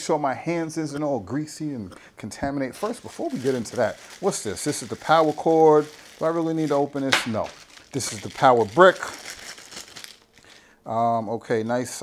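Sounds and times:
plastic bag crinkling: 2.7s - 10.7s.

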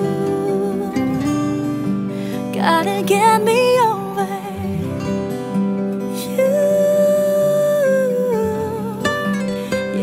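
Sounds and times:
soft song accompaniment: 0.0s - 10.0s.

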